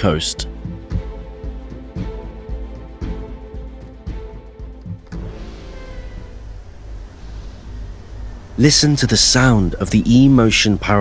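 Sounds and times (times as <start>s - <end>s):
boat rumble and rushing water: 5.1s - 11.0s
faint high whine: 5.1s - 11.0s.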